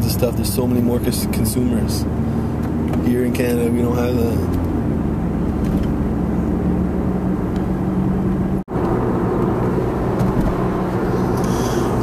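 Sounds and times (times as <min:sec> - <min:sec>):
car engine hum: 0:00.0 - 0:12.0
road noise: 0:00.0 - 0:12.0.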